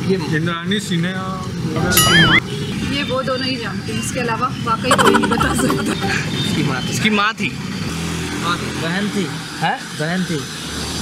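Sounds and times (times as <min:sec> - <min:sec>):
people talking: 0:04.9 - 0:06.8.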